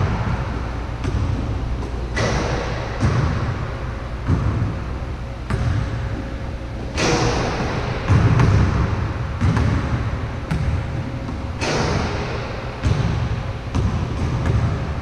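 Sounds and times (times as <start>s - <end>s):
basketball bouncing: 0.0s - 14.9s
steady low rumble: 0.0s - 15.0s.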